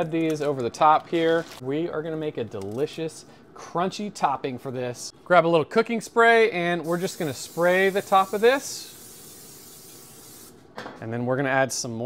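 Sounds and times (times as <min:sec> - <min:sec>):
aerosol spray hissing: 0:06.8 - 0:10.6.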